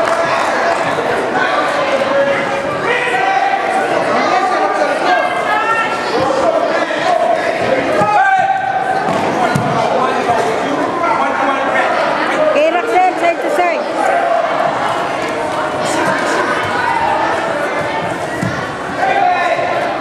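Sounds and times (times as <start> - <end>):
voices talking and calling out: 0.0 - 20.0.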